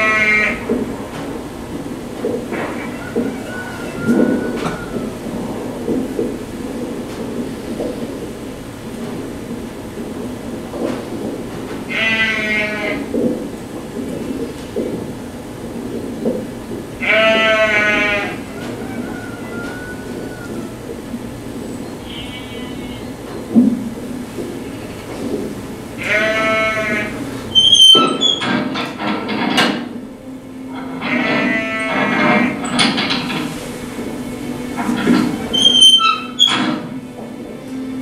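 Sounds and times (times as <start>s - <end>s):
wavering high cries: 2.5s - 5.9s, 17.0s - 23.3s, 30.0s - 38.0s
low rumbling drone: 28.8s - 38.0s.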